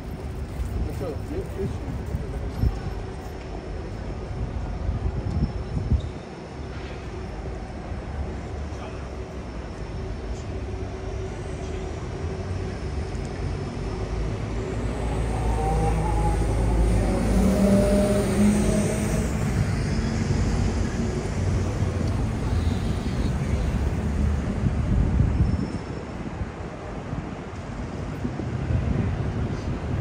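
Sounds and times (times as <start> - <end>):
traffic rumble: 0.0 - 30.0
heavy vehicle passing: 13.5 - 24.8.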